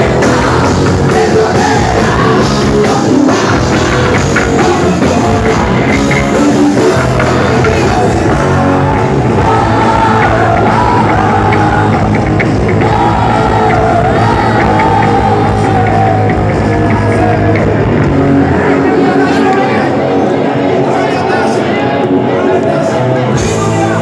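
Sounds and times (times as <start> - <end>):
live rock band playing loud: 0.0 - 20.8, 21.6 - 24.0.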